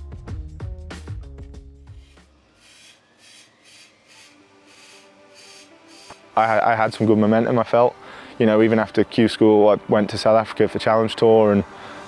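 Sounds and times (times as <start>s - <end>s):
rhythmic rasping strokes: 1.8s - 8.8s.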